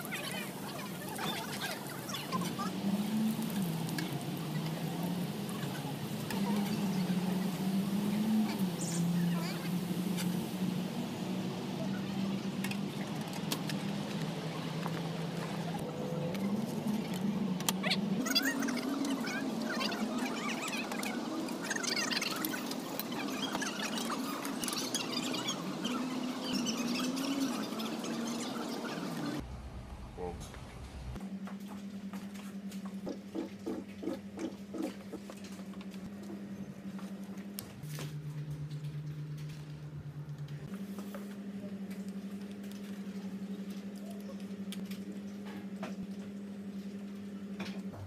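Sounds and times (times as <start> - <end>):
high chirps and squeaks: 17.8 - 29.4
low two-pitch hum: 29.4 - 48.0.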